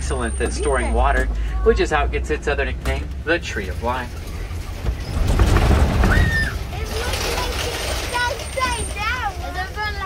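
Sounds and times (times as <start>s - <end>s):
truck driving rumble: 0.0s - 10.0s.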